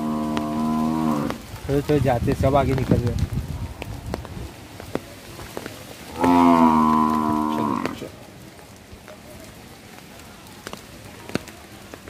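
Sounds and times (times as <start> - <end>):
cow mooing: 0.0 - 1.4, 6.1 - 8.1.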